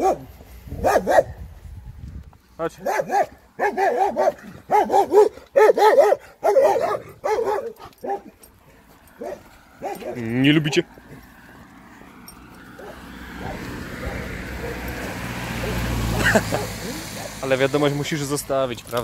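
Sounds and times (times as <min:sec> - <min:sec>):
dog barking: 0:00.0 - 0:01.4, 0:02.8 - 0:08.4, 0:09.2 - 0:10.3, 0:12.8 - 0:17.4.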